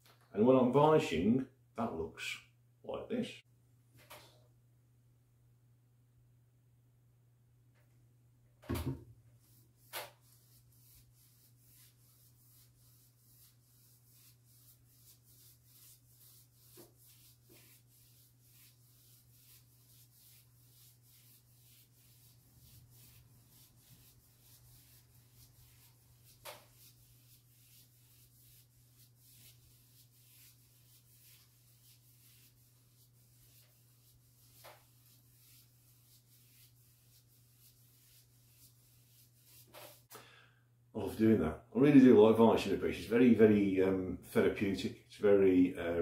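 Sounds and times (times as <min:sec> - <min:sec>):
paintbrush swishing: 0:09.4 - 0:40.1.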